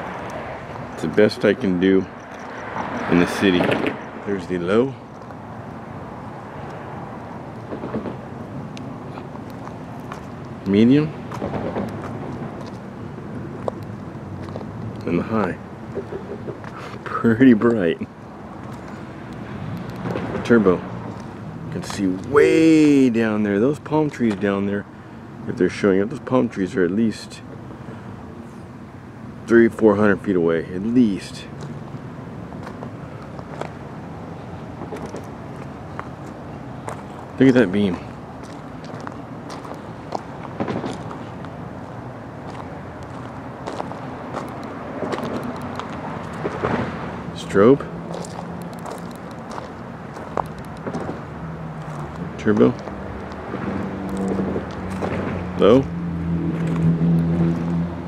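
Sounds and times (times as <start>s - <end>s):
distant city traffic rumble: 0.0s - 58.0s
footsteps crunching on gravel: 9.1s - 10.5s, 11.3s - 12.9s, 13.6s - 15.3s, 35.0s - 46.6s, 48.1s - 55.1s.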